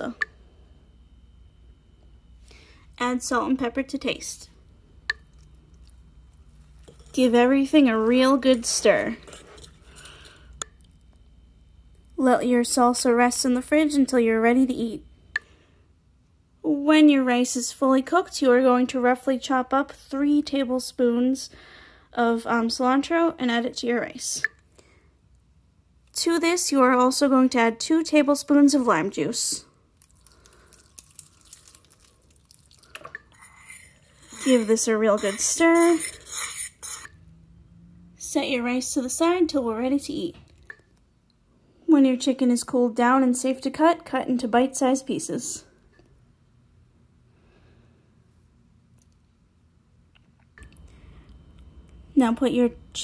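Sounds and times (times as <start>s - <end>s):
small ticks and drips: 5.0s - 6.4s, 30.0s - 33.9s, 40.5s - 41.4s
spoon stirring wet salsa: 5.0s - 11.1s, 30.0s - 37.2s
liquid squirting from squeeze bottle: 30.0s - 37.1s.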